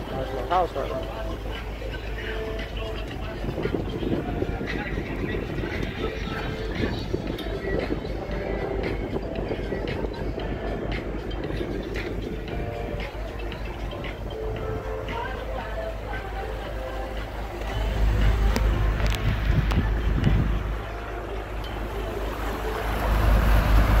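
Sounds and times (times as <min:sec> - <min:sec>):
background music: 0:00.0 - 0:24.0
boat engine rumbling: 0:00.0 - 0:24.0
indistinct voices: 0:00.0 - 0:24.0.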